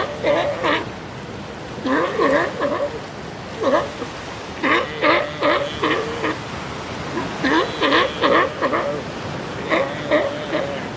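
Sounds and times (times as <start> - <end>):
sea lion calling: 0.0 - 1.0, 1.7 - 10.9.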